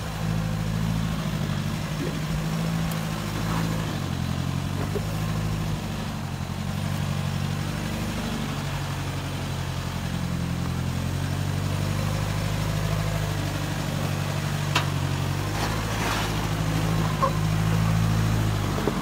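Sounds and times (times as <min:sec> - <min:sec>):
truck engine running: 0:00.0 - 0:19.0.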